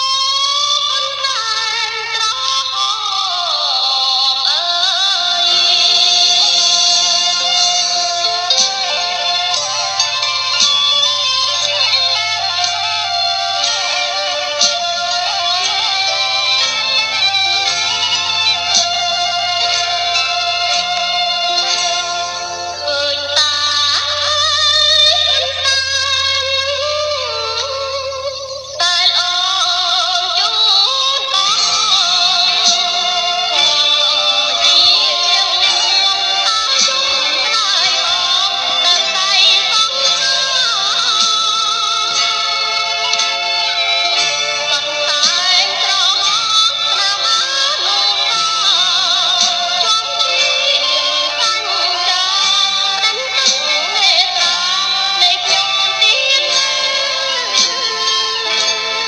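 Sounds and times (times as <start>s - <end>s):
instrumental backing: 0.0s - 59.0s
person singing with music: 0.0s - 59.0s.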